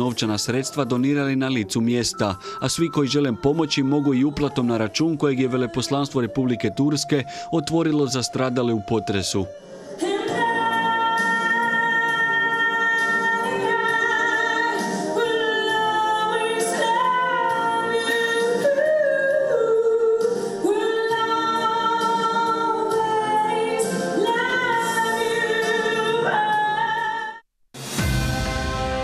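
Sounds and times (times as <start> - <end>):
musical accompaniment: 0.0 - 18.9, 27.8 - 29.0
woman singing with vibrato: 3.0 - 6.8, 9.5 - 27.4.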